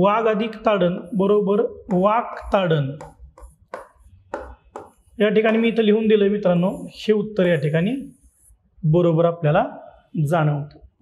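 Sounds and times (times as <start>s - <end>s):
pen scratching writing: 2.3s - 5.7s, 6.6s - 8.6s.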